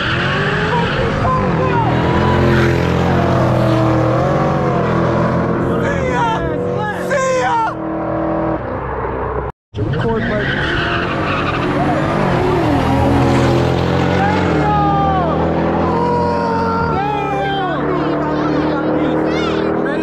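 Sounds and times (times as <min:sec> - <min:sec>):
car engine accelerating: 0:00.0 - 0:20.0
high squealing glides: 0:00.0 - 0:20.0.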